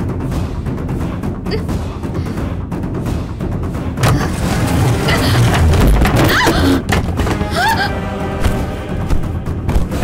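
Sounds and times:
rumbling dramatic soundtrack: 0:00.0 - 0:10.0.

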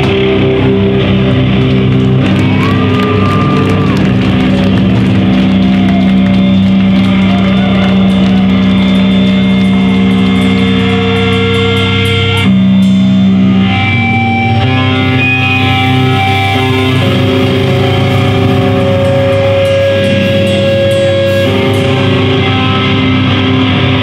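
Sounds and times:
bass guitar droning: 0:00.0 - 0:24.0
distorted electric guitar droning: 0:00.0 - 0:24.0
high feedback whine: 0:05.0 - 0:24.0
cymbal hits: 0:14.7 - 0:23.6.

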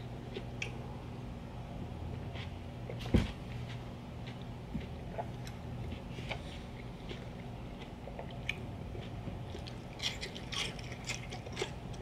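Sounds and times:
faint low hum: 0:00.0 - 0:12.0
crunchy vegetable chewing: 0:02.0 - 0:12.0.

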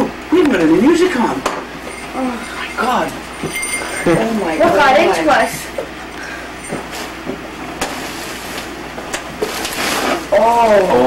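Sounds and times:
steady low hum: 0:00.0 - 0:11.0
wrapping paper rustling and tearing: 0:07.9 - 0:08.8, 0:09.4 - 0:10.7.

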